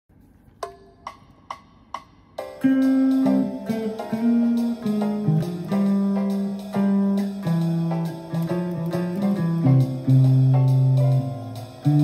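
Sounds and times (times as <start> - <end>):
metronome clicks: 0.6 - 12.0.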